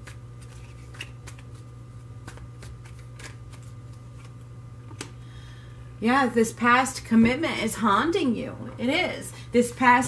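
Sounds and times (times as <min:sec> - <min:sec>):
cards being shuffled: 0:00.0 - 0:05.1
steady low hum: 0:00.0 - 0:10.0.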